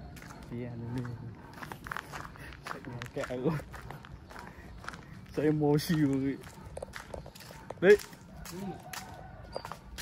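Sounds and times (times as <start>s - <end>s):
footsteps on stone paving: 0.0s - 10.0s.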